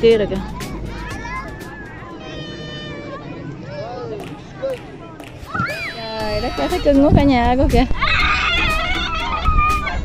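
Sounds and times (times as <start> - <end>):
children calling and squealing: 0.0 - 10.0.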